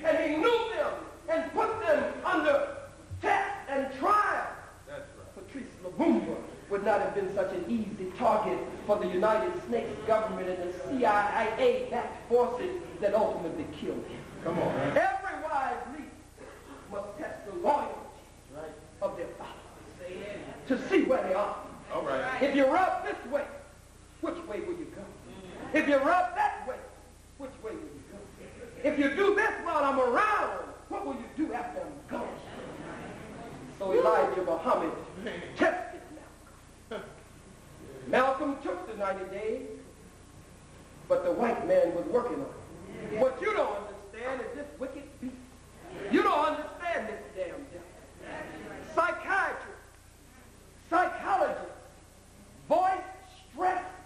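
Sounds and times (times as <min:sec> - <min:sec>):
person speaking loudly: 0:00.0 - 0:32.5, 0:33.7 - 0:36.4, 0:38.1 - 0:39.9, 0:41.1 - 0:49.9, 0:50.8 - 0:51.9, 0:52.7 - 0:54.0.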